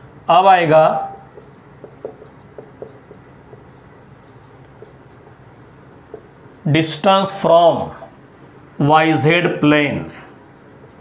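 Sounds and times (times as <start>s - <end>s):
marker pen writing on whiteboard: 0.9s - 7.4s, 10.2s - 11.0s.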